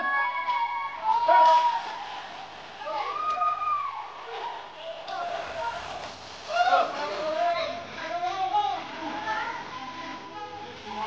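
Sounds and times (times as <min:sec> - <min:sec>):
hall full of people: 0:00.0 - 0:08.0.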